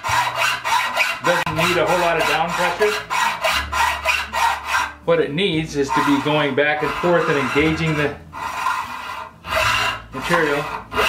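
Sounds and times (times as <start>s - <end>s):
hacksaw cutting metal: 0.0s - 5.0s, 5.6s - 11.0s.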